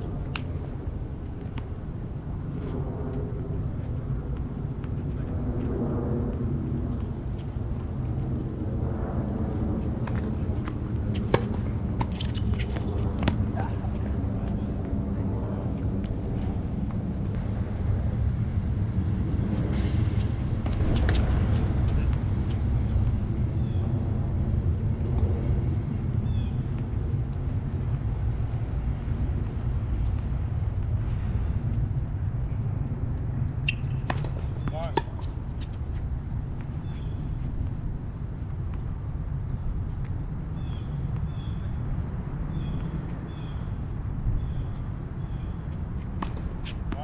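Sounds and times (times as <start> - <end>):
steady low rumble: 0.0 - 47.0
racket hitting ball: 10.0 - 13.4, 33.7 - 35.3, 46.2 - 47.0.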